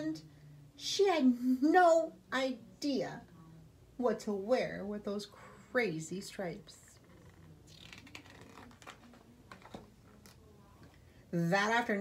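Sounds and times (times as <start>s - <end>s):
book page being turned: 7.2s - 10.4s.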